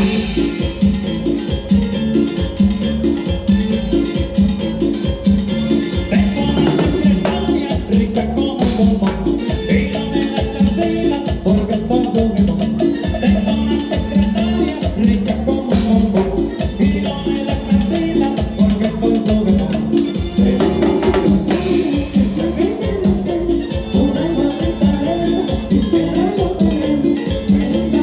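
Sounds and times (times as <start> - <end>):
latin dance band playing: 0.0 - 28.0.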